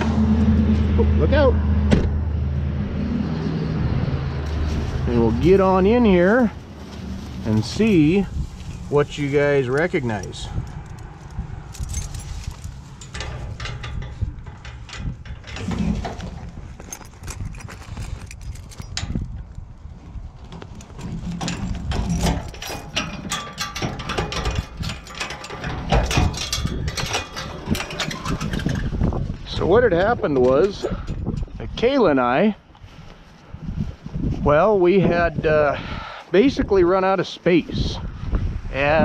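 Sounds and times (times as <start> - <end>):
steady low rumble: 0.0 - 35.8
chain-link gate opening: 4.5 - 19.4, 20.6 - 29.2, 30.2 - 31.5
padlock and chain rattling: 7.5 - 19.7, 20.6 - 29.3
keys jangling: 9.8 - 15.6, 16.6 - 19.3, 20.8 - 28.9.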